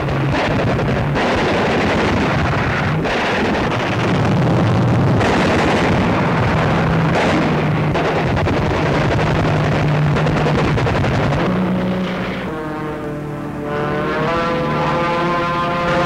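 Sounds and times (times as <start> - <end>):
aircraft engine roar: 0.0 - 16.0
sustained musical chords: 11.5 - 16.0.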